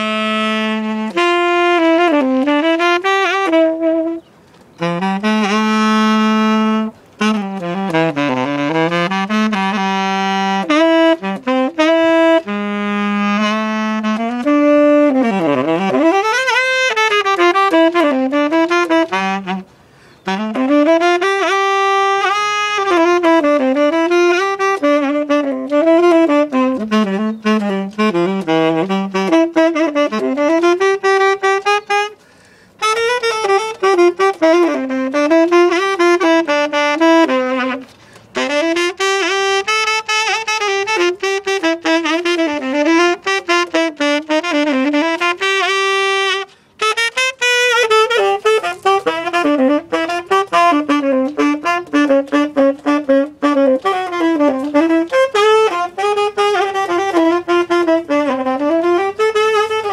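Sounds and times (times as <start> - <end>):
tenor saxophone jazz solo: 0.0 - 59.9
saxophonist breaths: 19.7 - 20.3, 32.2 - 32.8, 37.9 - 38.4, 46.5 - 46.8.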